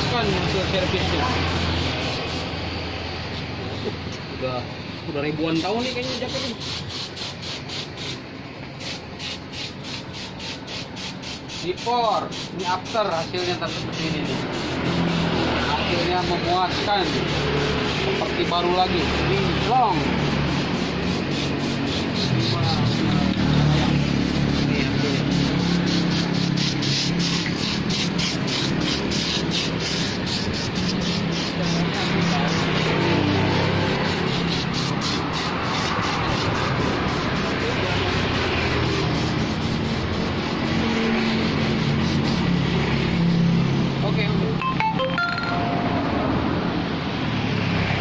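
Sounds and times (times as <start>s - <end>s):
road traffic passing: 0.0s - 48.0s
music playing: 44.6s - 46.5s.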